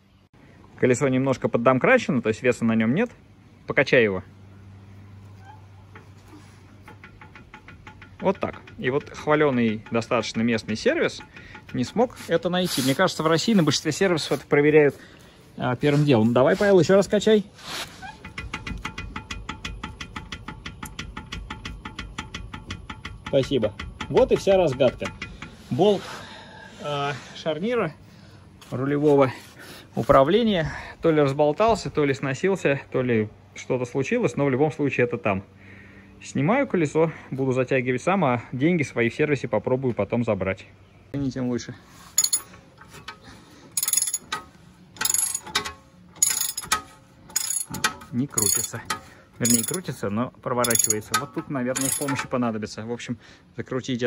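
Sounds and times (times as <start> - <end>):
ratchet wrench clicking: 6.8 - 12.0, 43.8 - 49.9, 50.6 - 52.3.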